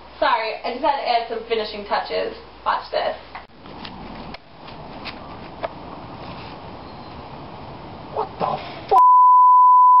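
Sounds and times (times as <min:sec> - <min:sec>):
long electronic beep: 0:09.0 - 0:10.0.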